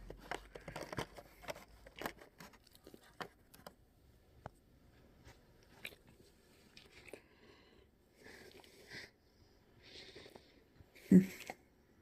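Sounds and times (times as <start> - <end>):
cardboard and plastic crinkling: 0.0 - 3.8.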